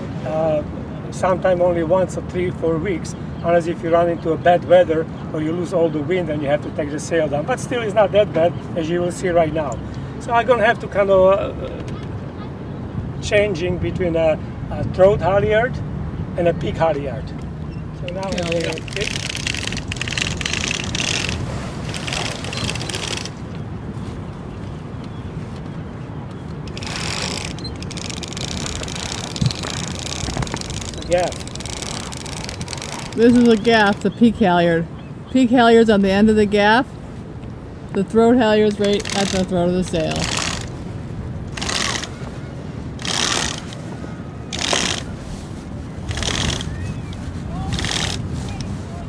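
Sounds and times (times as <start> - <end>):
wind on microphone: 11.7 - 49.0
canvas sail rustling: 18.2 - 25.8, 26.7 - 34.0, 38.8 - 49.0
rope rasping through pulleys: 18.3 - 23.4, 26.7 - 33.6, 41.5 - 42.2, 43.0 - 43.8, 44.5 - 45.1, 46.1 - 46.8, 47.7 - 48.8.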